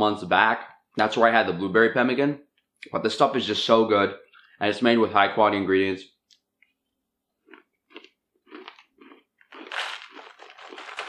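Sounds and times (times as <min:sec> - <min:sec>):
person chewing crunchy food: 0:07.4 - 0:11.0.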